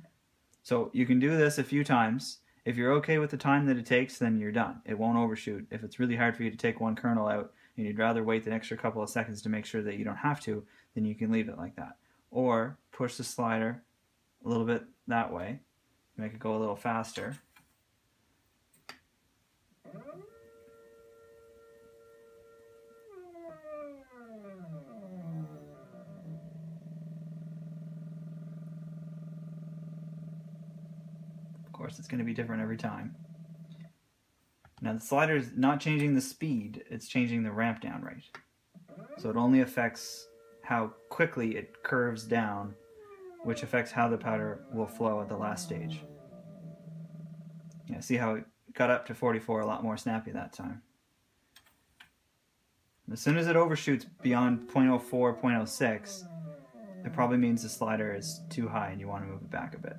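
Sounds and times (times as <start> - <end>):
powder trickler motor humming: 23.7 - 33.8, 40.3 - 47.9
powder trickler whining: 38.9 - 47.9.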